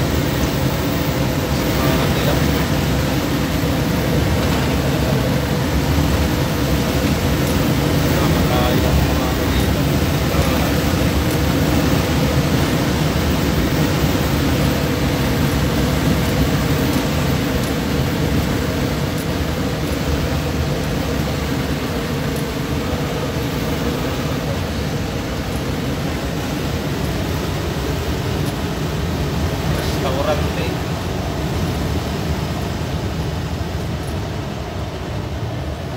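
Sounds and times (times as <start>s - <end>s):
road noise: 0.0s - 35.9s
vehicle engine drone: 0.0s - 35.9s.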